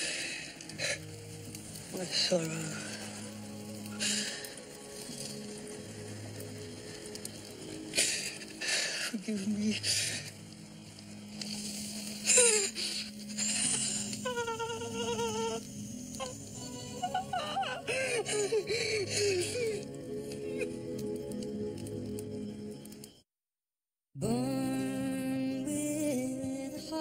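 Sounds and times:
dramatic film score drone: 0.0s - 23.1s
man sobbing and wailing: 13.4s - 15.6s, 16.2s - 19.9s.

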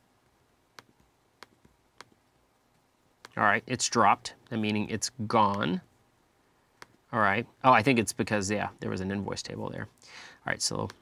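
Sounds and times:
computer mouse clicks: 0.7s - 2.2s.

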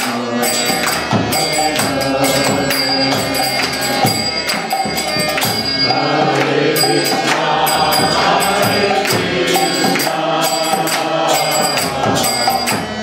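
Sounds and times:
hand cymbals striking: 0.0s - 13.0s
harmonium chords: 0.0s - 13.0s
voices chanting: 0.0s - 13.0s.

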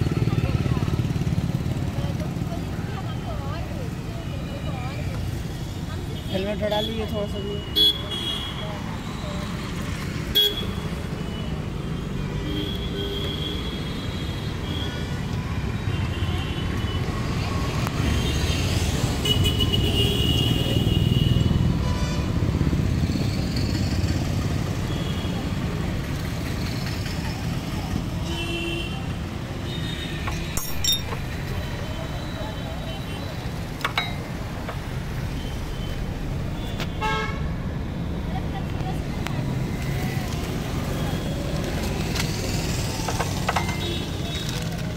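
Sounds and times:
rumble of passing vehicles: 0.0s - 44.9s.

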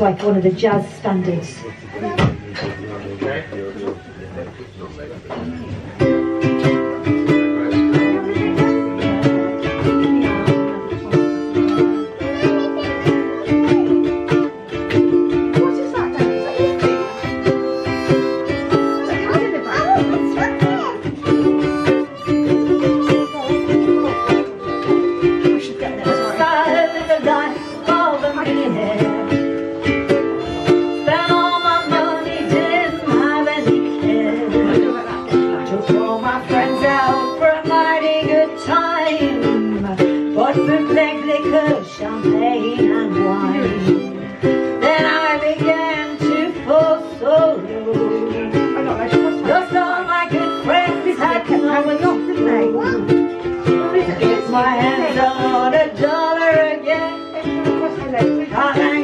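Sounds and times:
ukulele strumming chords: 5.3s - 59.0s
harmonica melody: 6.0s - 59.0s.

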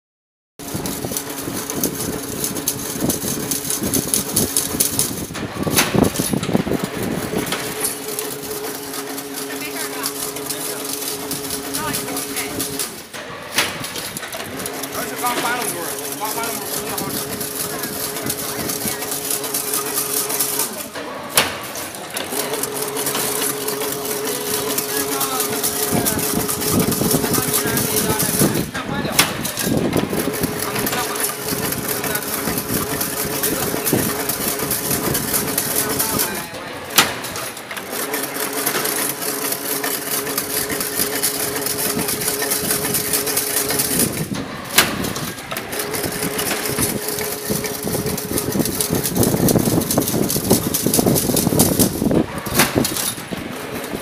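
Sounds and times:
machine motor hum: 0.6s - 54.0s
rapid metallic clattering: 0.6s - 54.0s.

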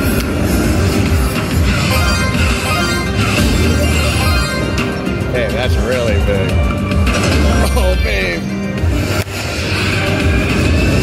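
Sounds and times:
electronic sound effects: 0.0s - 6.2s
slot machine music: 0.0s - 11.0s.

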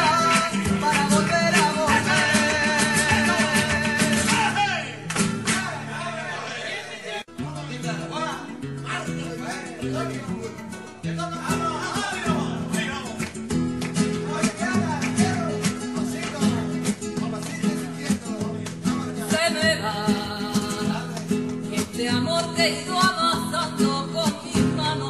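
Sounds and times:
person singing: 0.0s - 4.8s, 17.9s - 25.0s
acoustic guitar strumming: 0.0s - 6.6s, 7.2s - 25.0s.

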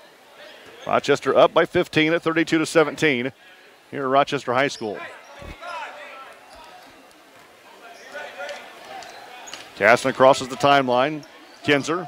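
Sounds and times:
faint crowd chatter: 4.7s - 12.0s.

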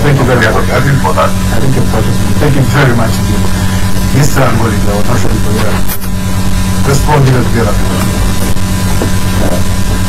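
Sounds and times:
loud low electrical hum: 0.0s - 10.0s.

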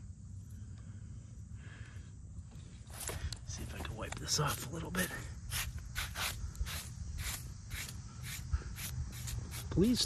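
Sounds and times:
hand brushing grit off stone: 5.5s - 9.8s.

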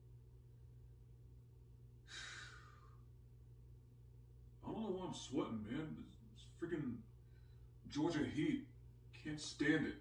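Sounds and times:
faint low hum: 0.0s - 10.0s
man sighing: 2.1s - 2.9s.

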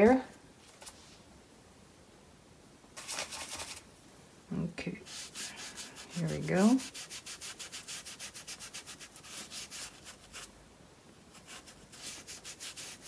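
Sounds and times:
paintbrush scrubbing on paper: 3.0s - 3.8s, 5.0s - 10.5s, 11.3s - 13.0s.

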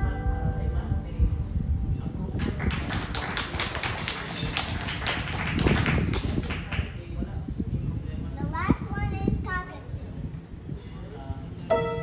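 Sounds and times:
audience applause: 2.4s - 6.8s.

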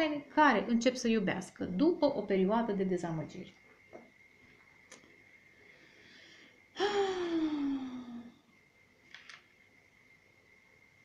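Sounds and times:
woman sighing: 6.7s - 8.4s.

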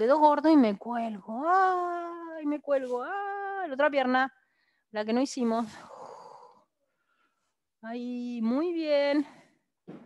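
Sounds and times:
woman speaking: 0.0s - 4.3s, 5.0s - 6.1s, 7.8s - 9.4s.

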